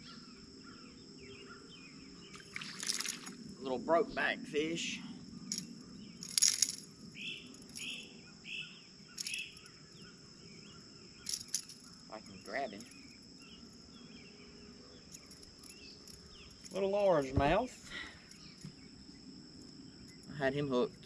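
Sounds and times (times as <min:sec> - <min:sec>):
bird calls: 0:00.0 - 0:20.9
high insect drone: 0:00.0 - 0:21.0.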